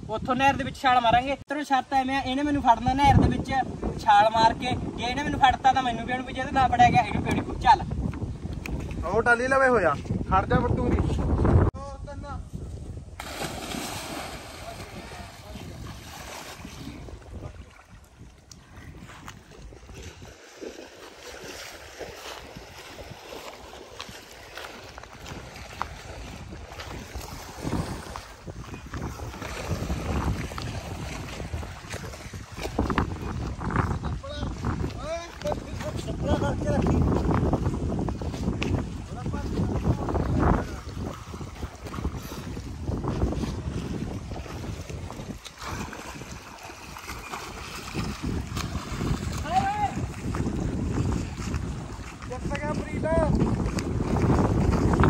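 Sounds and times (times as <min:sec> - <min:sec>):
wind noise on microphone: 0:00.0 - 0:55.0
water splashing from swimmer: 0:13.2 - 0:33.7, 0:36.8 - 0:55.0.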